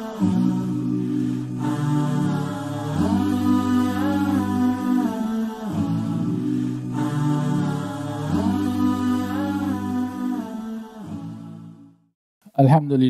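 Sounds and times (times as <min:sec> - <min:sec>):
voices humming held notes: 0:00.0 - 0:11.4.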